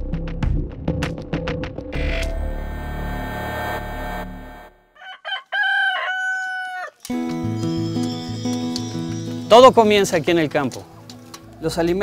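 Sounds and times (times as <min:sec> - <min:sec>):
music: 0:00.0 - 0:04.6, 0:07.1 - 0:12.0
rooster crowing: 0:05.0 - 0:07.0.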